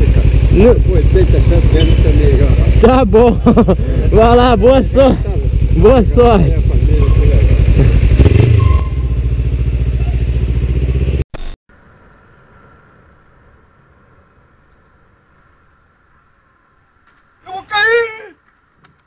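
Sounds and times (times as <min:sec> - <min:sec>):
motorcycle engine idling: 0:00.0 - 0:11.2.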